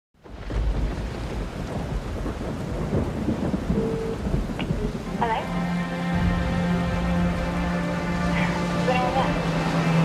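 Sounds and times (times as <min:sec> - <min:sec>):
rain: 0:00.2 - 0:10.0
thunder rumbling: 0:00.2 - 0:10.0.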